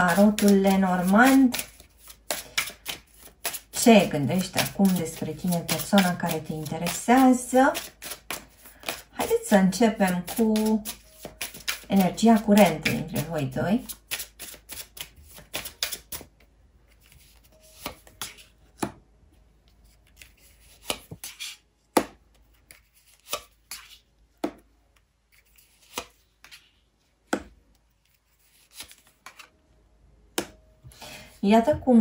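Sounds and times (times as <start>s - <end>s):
cards slapping on table: 20.8s - 22.2s.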